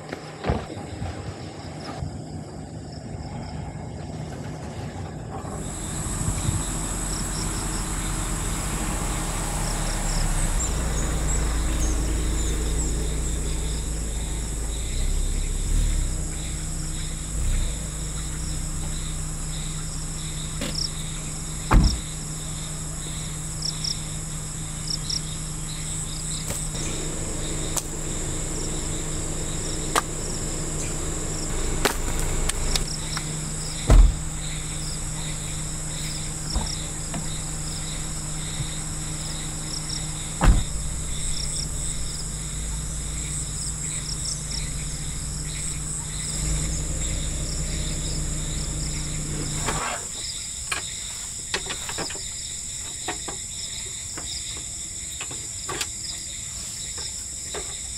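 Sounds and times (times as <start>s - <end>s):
insects chirping: 0.0s - 57.9s
low steady hum: 3.6s - 49.8s
gear knocks and thumps: 20.6s - 22.2s, 29.5s - 39.4s, 40.2s - 43.4s.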